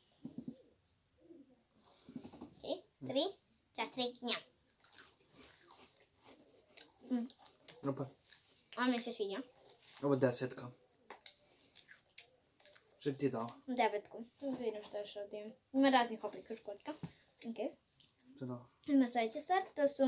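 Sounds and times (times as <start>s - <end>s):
crunchy cookies being chewed: 4.6s - 10.0s, 11.0s - 13.6s.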